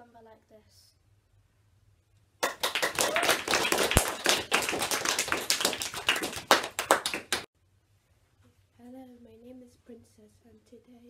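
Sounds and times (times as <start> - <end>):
group of people clapping: 2.4 - 7.5.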